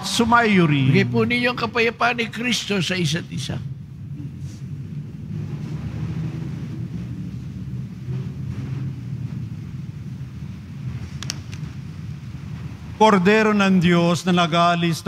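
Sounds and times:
low church room rumble: 0.0 - 15.0.

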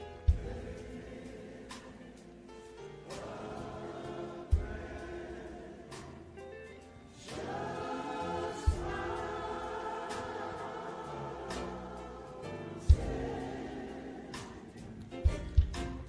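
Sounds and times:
gospel choir singing: 0.0 - 16.0.

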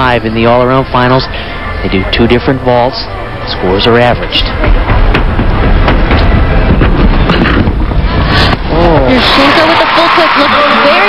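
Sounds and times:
arena crowd roar: 8.0 - 11.0.

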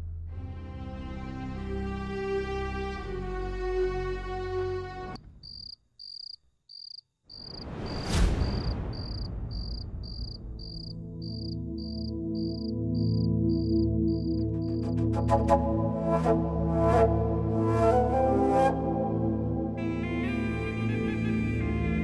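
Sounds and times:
cricket chirping: 5.2 - 15.0
whoosh: 7.6 - 10.8.

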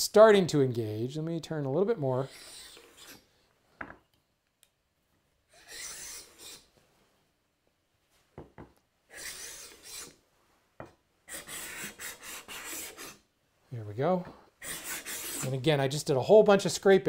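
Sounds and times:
scraper rasping across wood: 2.2 - 3.3, 5.6 - 6.7, 9.1 - 10.2, 11.3 - 13.2, 14.6 - 15.6.

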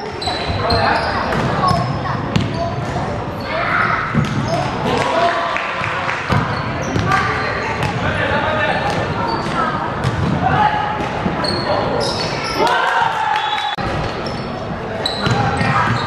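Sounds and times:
shoes squeaking: 0.0 - 3.0.

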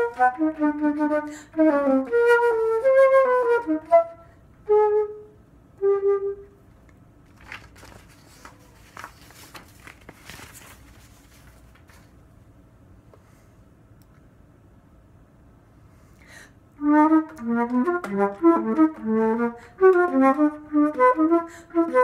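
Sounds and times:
alto flute playing: 0.0 - 6.6, 16.8 - 22.0
faint clicks and handling noise: 6.7 - 12.3.

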